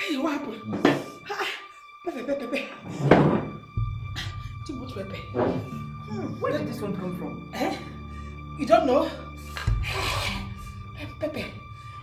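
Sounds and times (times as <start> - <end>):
background music: 0.0 - 12.0
woman speaking: 4.6 - 7.9.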